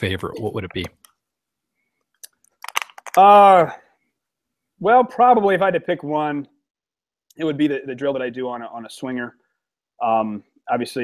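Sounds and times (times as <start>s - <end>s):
mouth clicks and lip smacks: 2.0s - 3.2s.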